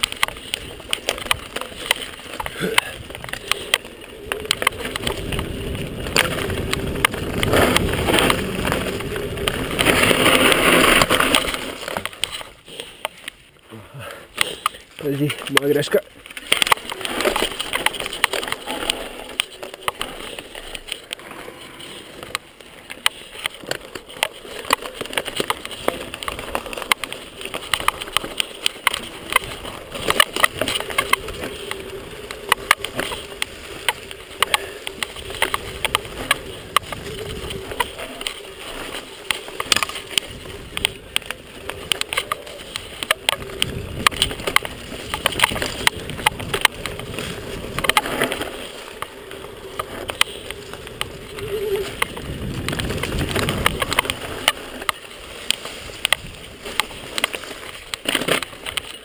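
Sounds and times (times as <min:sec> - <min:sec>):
mountain bike rattling and clattering: 0:00.0 - 0:59.0
steady rushing noise: 0:00.0 - 0:59.0.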